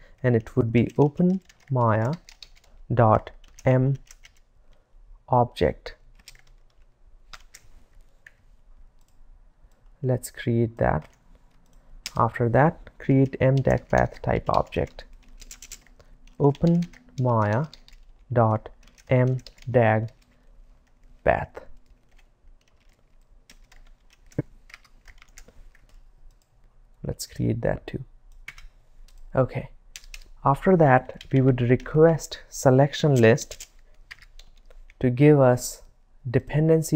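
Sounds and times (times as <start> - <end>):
computer keyboard typing: 0.4 - 4.4, 6.1 - 7.6, 13.2 - 21.1, 21.8 - 26.5, 28.3 - 29.2, 29.9 - 30.3, 33.2 - 35.0.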